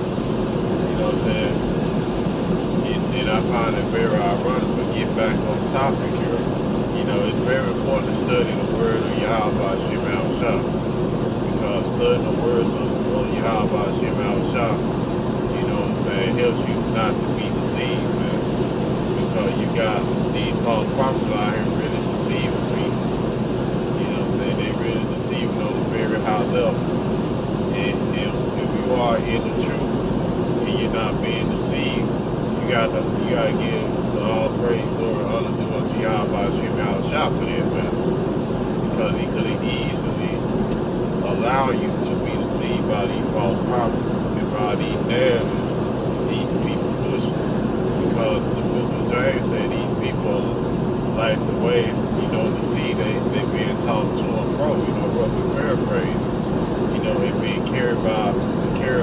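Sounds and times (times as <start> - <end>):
car road and engine noise: 0.0 - 59.0
man talking: 0.7 - 1.7, 2.8 - 10.7, 11.4 - 14.9, 15.5 - 18.5, 19.2 - 23.0, 24.0 - 26.8, 27.7 - 38.0, 38.8 - 40.5, 41.2 - 56.2, 56.9 - 59.0.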